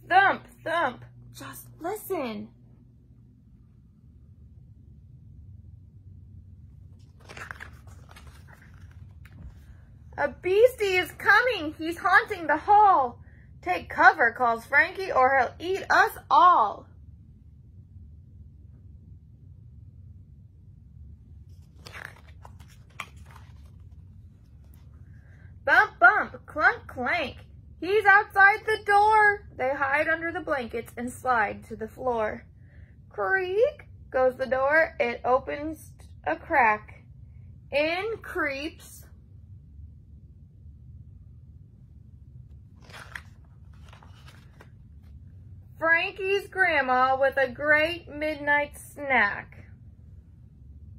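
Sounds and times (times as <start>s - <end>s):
book pages turning: 6.8s - 9.8s, 21.4s - 25.1s, 42.4s - 45.3s.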